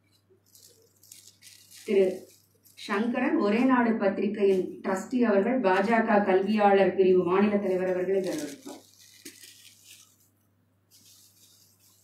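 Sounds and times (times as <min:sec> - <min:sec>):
rustling and crackling: 0:00.1 - 0:03.0, 0:07.4 - 0:10.3.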